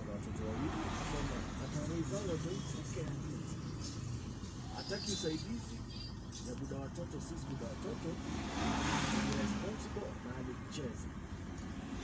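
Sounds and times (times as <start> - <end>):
people talking: 0.0 - 8.4, 9.1 - 11.1
minibus engine and road noise: 0.0 - 12.0.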